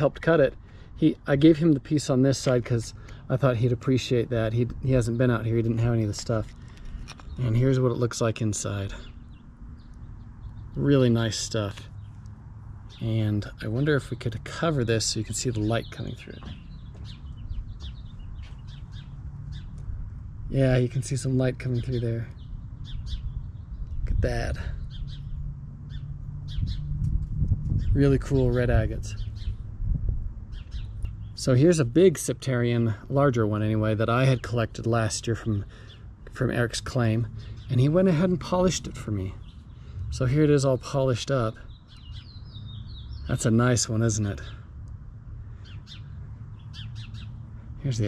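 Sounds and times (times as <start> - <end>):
low steady rumble: 0.0 - 35.6
small birds chirping: 0.0 - 48.0.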